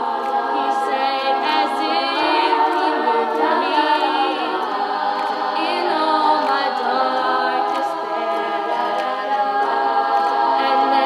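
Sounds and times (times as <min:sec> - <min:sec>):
women singing a cappella: 0:00.0 - 0:11.0.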